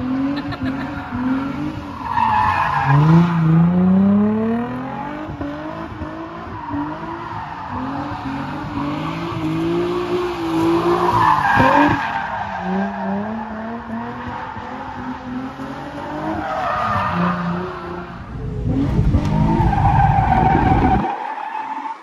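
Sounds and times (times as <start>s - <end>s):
car engine revving: 0.0s - 21.2s.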